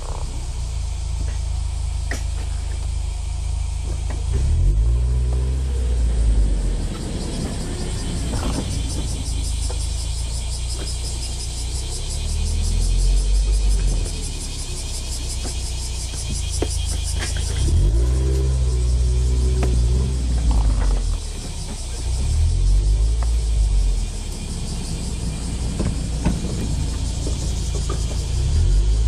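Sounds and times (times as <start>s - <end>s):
car engine accelerating: 0.0s - 29.0s.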